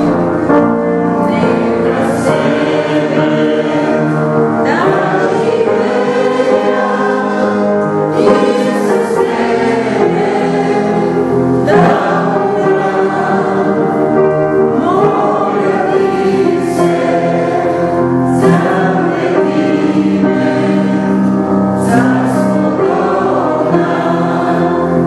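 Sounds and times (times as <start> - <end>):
choir singing religious music: 0.0 - 25.0.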